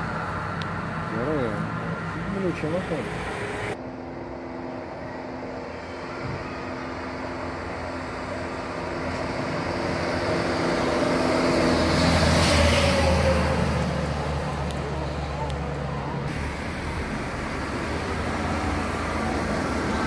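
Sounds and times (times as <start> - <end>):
bus passing by: 0.0 - 20.0.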